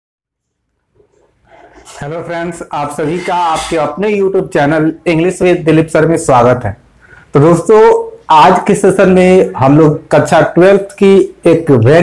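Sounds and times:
faint room noise: 0.3s - 12.0s
person speaking: 1.0s - 12.0s.

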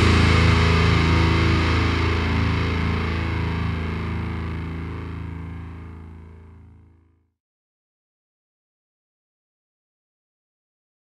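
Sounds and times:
distorted guitar chord ringing: 0.0s - 7.2s.

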